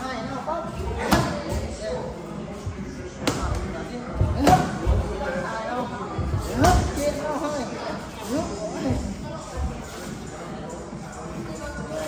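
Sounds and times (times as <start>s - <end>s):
voices in a gym: 0.0s - 12.0s.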